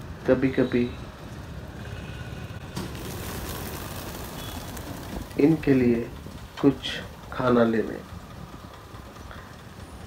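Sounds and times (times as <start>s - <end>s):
street traffic: 0.0s - 10.0s
pigeons flapping wings: 2.7s - 7.3s.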